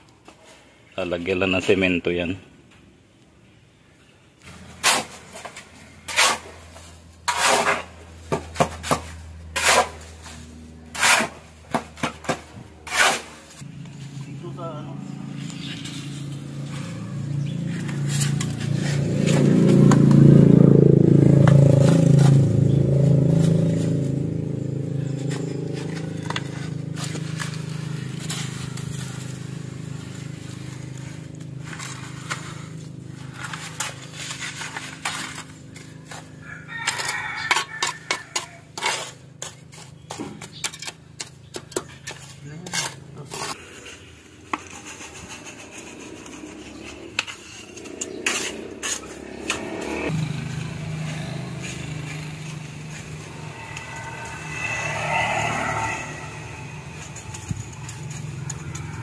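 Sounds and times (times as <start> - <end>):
shovel scraping wet cement: 4.5 - 13.6, 17.7 - 20.2, 25.2 - 29.4, 30.4 - 49.9, 50.6 - 59.0
low droning hum: 5.7 - 26.9, 46.8 - 59.0.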